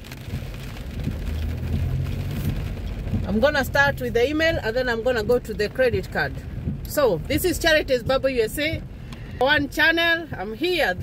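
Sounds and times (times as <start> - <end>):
car hum on wet road: 0.0 - 11.0
rain on car windshield and roof: 0.0 - 11.0.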